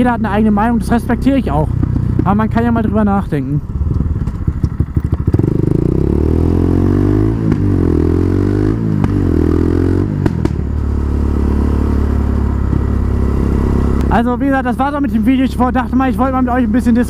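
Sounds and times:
quad bike engine accelerating: 0.0s - 17.0s.

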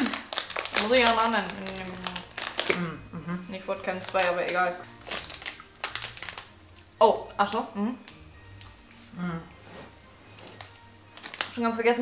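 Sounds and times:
plastic snack bag crinkling: 0.0s - 2.9s, 3.6s - 8.8s, 10.4s - 12.0s.

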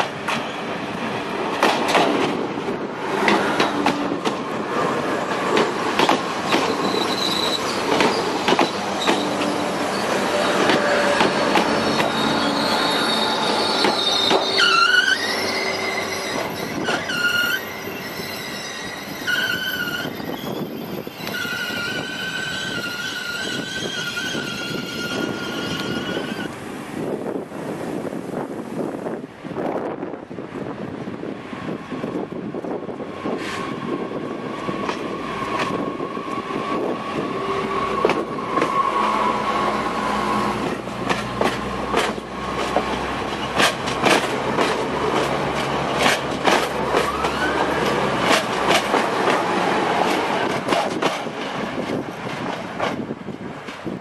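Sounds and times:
train engine rumble: 0.0s - 54.0s
wheels clicking over rail joints: 3.2s - 10.0s, 40.6s - 53.9s
train wheels squealing: 6.5s - 26.6s.

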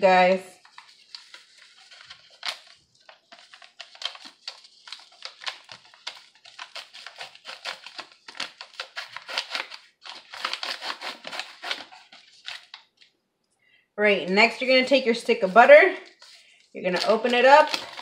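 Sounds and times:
seasoning packet crinkling: 0.6s - 13.1s, 16.0s - 18.0s.

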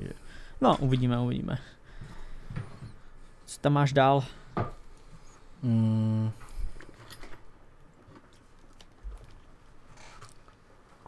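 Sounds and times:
man humming hesitantly: 5.6s - 6.6s.

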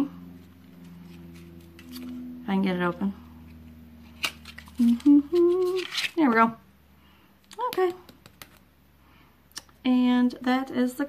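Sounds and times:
woman humming: 4.7s - 6.1s.

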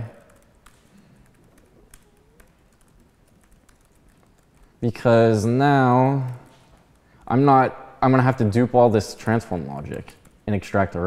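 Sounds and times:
computer keyboard typing: 0.0s - 5.3s.

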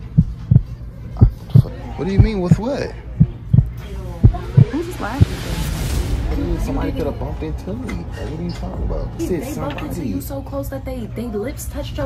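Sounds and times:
deep heartbeat-like thumps: 0.0s - 9.2s
steady low drone: 3.0s - 10.4s.

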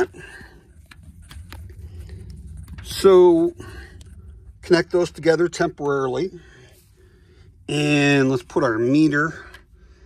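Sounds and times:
camera handling rumble: 0.0s - 3.2s
faint clicks and rustles: 0.0s - 7.2s.

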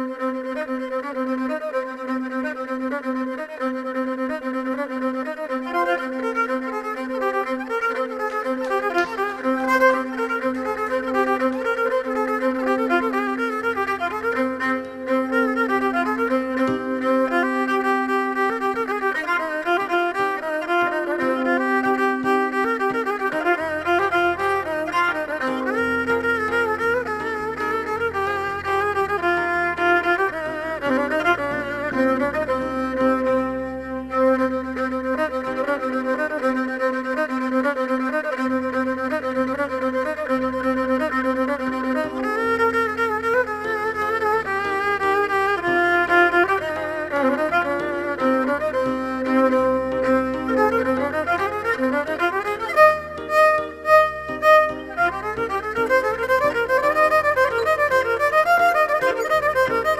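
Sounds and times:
bowed fiddle folk melody: 0.0s - 59.9s
low accompaniment notes: 3.6s - 59.9s.

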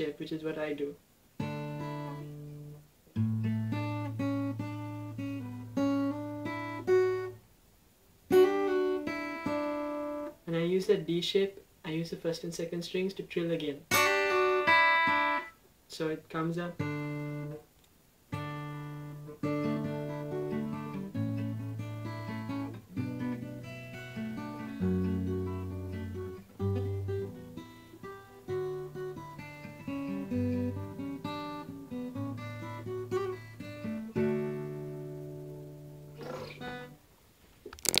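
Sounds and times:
acoustic guitar chord and trill: 1.4s - 7.4s, 8.3s - 10.3s, 13.9s - 15.6s, 16.8s - 17.6s, 18.3s - 37.0s
hand scraping guitar strings: 36.2s - 36.9s.

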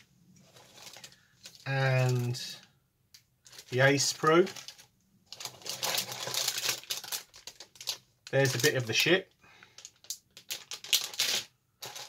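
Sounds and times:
plastic bag crinkling: 0.5s - 2.4s, 3.4s - 12.0s.

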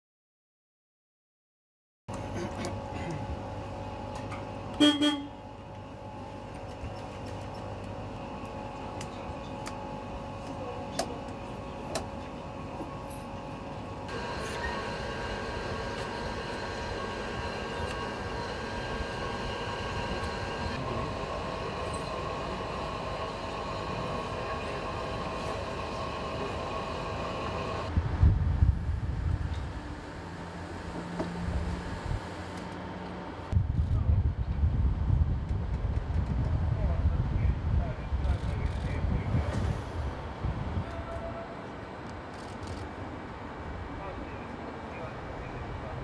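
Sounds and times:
train whining tones: 14.0s - 27.9s.

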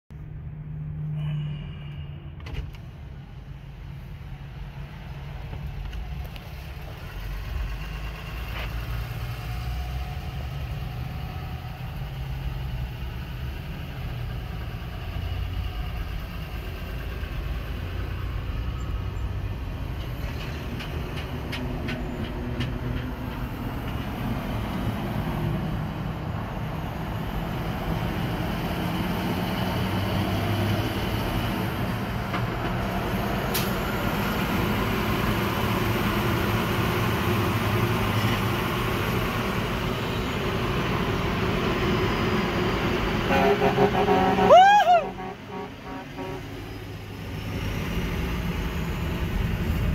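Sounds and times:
road and engine noise in car: 0.1s - 49.9s
truck passing alongside: 0.2s - 49.9s.

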